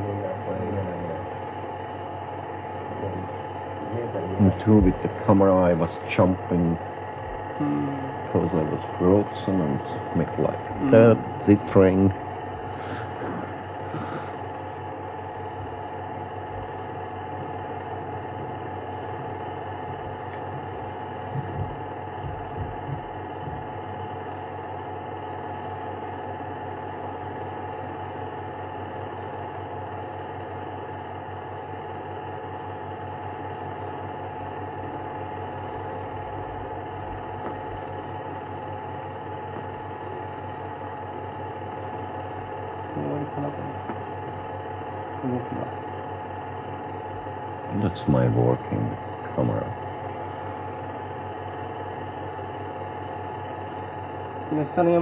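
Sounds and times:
droning hum of held tones: 0:00.0 - 0:55.0.

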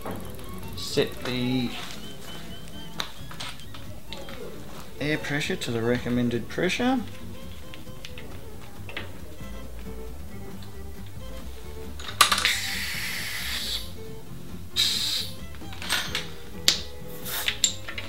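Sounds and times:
background music: 0:00.0 - 0:18.0
air chuck clicks: 0:12.0 - 0:13.8, 0:14.8 - 0:18.0
compressed air hissing into tyre: 0:12.3 - 0:14.1, 0:14.7 - 0:15.6, 0:16.8 - 0:17.9.

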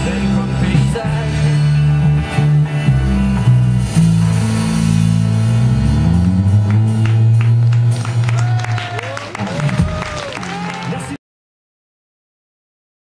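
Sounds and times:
instrumental rock band playing: 0:00.0 - 0:11.1.

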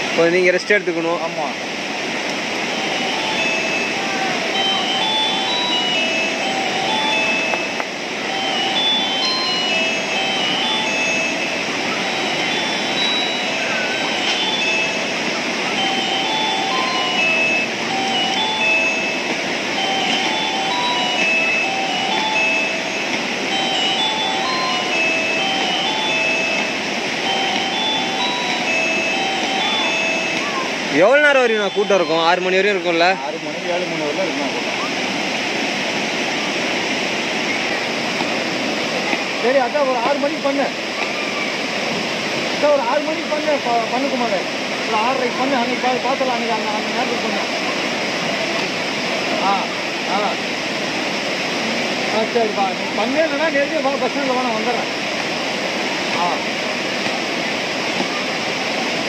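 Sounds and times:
river rapids rushing: 0:00.0 - 0:59.0
simple melody of clear notes: 0:02.5 - 0:35.6.

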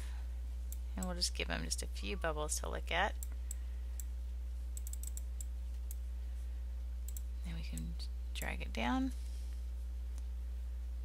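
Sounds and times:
low electrical hum: 0:00.0 - 0:11.0
computer mouse clicks: 0:04.8 - 0:06.0, 0:07.1 - 0:08.5.

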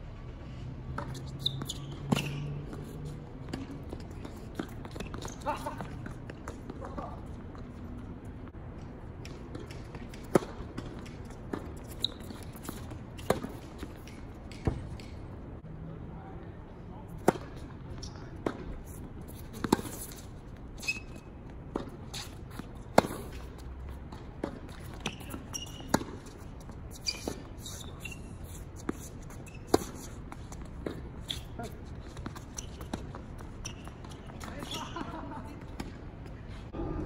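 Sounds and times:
tennis ball bouncing on court: 0:00.9 - 0:07.7, 0:09.2 - 0:15.2, 0:21.7 - 0:27.5, 0:28.8 - 0:36.1
tennis ball off rackets: 0:00.9 - 0:07.7, 0:09.2 - 0:15.3, 0:17.2 - 0:35.0.

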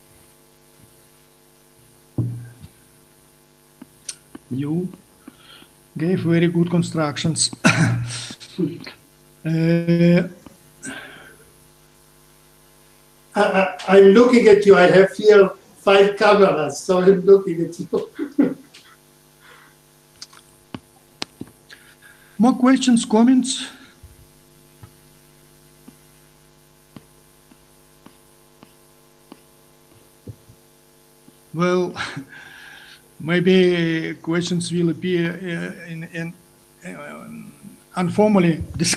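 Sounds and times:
low electrical hum: 0:00.0 - 0:38.9.

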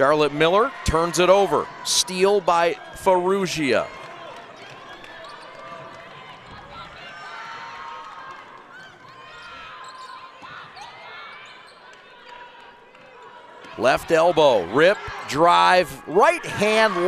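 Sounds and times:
voices in a hall: 0:00.0 - 0:17.0
sneakers squeaking: 0:04.8 - 0:07.0, 0:08.8 - 0:13.7.

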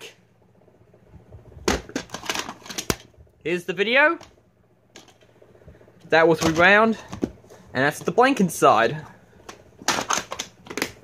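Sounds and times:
plastic case clicking shut: 0:09.8 - 0:11.0.

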